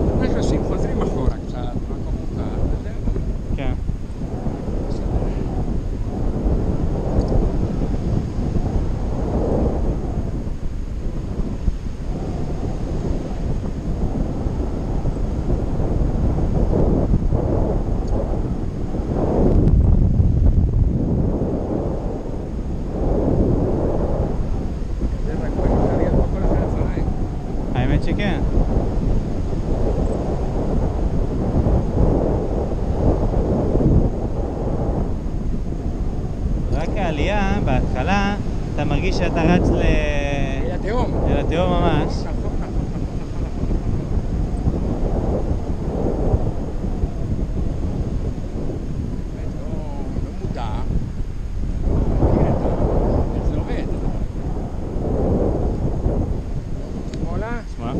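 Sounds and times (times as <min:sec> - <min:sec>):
wind buffeting microphone: 0:00.0 - 0:57.9.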